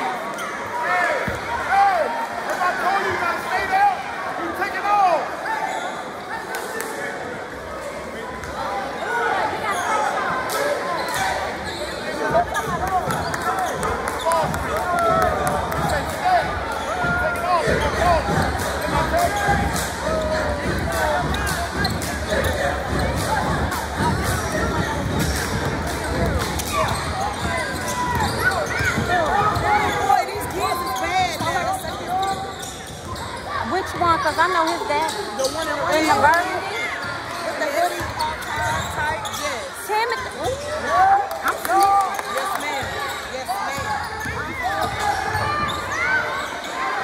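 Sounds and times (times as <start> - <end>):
crowd voices and shouts: 0.0 - 47.0
sneakers squeaking: 9.6 - 41.0, 41.6 - 47.0.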